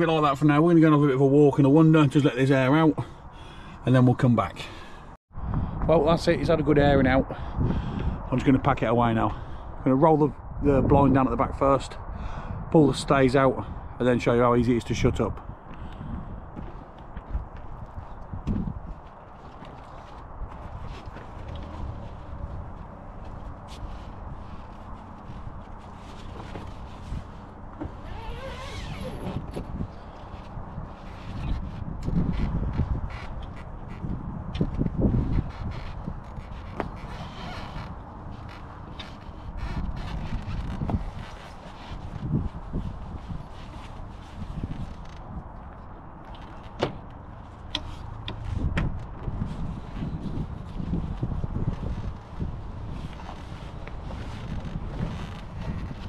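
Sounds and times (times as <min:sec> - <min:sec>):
wind buffeting microphone: 0:05.3 - 0:56.0
fabric rustling: 0:16.5 - 0:32.6, 0:35.4 - 0:45.2, 0:49.4 - 0:56.0.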